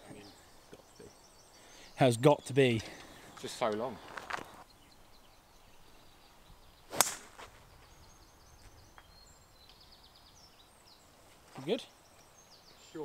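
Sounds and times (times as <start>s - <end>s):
golf club striking ball: 6.9s - 7.4s.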